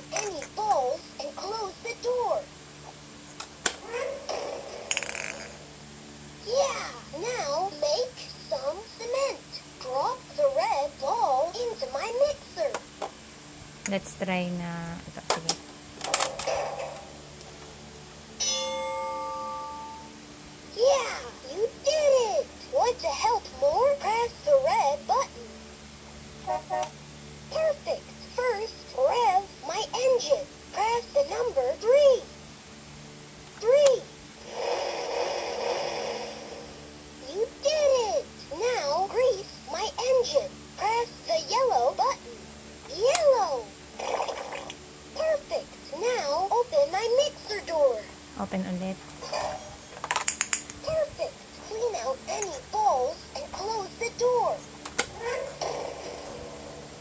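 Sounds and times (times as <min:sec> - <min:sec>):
plastic ball clicking and rattling: 0:04.9 - 0:05.5, 0:50.0 - 0:50.8
electronic toy chime: 0:18.4 - 0:20.1, 0:49.4 - 0:50.0.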